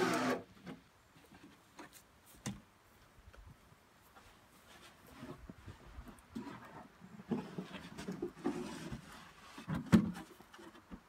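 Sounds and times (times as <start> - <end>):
wood scraping against soil: 0.0 - 2.4, 4.1 - 11.0.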